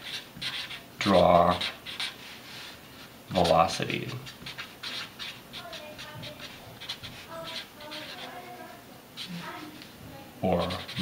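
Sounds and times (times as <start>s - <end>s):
marker scratching on paper: 0.0s - 0.9s, 1.5s - 9.8s, 10.6s - 11.0s.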